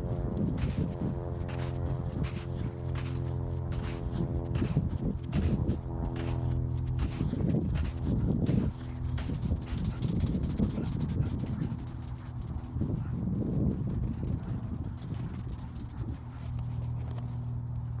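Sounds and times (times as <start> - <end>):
steady low hum: 0.0 - 18.0
footsteps crunching through snow: 0.1 - 12.3.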